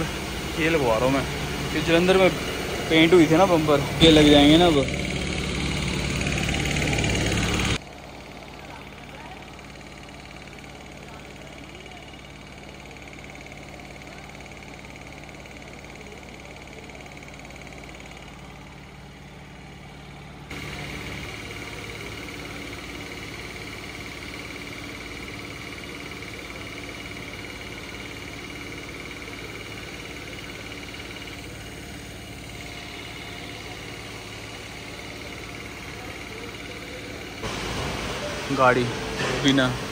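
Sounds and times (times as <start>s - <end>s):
workshop machinery humming: 0.0s - 39.9s.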